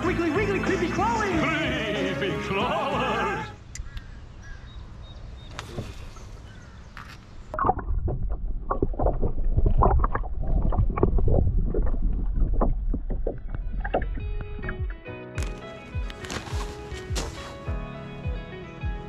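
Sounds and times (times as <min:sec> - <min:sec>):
low underwater rumble: 0:07.5 - 0:15.1
muffled underwater water sloshing: 0:07.5 - 0:15.1.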